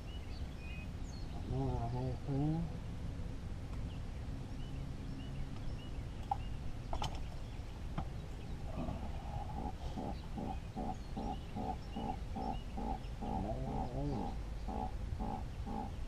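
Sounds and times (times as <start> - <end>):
animal calling rhythmically: 8.8 - 16.0.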